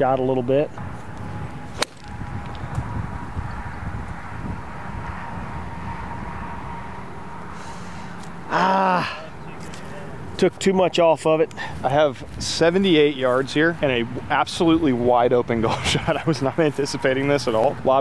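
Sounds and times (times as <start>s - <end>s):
outdoor background noise: 0.0s - 18.0s
person calling out: 8.5s - 9.3s.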